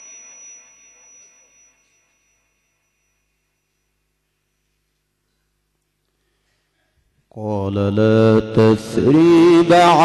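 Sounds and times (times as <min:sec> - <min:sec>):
faint room noise: 0:00.0 - 0:09.8
melodic recitation over loudspeakers: 0:06.6 - 0:10.0.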